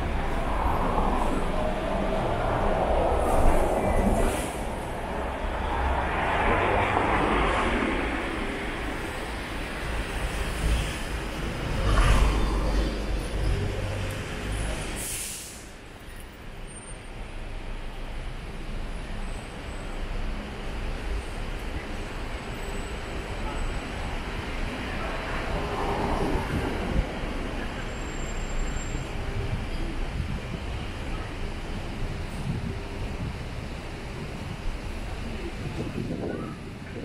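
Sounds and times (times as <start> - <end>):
bus passing: 0.0 - 37.0
traffic hum: 0.0 - 37.0
sharp hiss: 14.9 - 15.8.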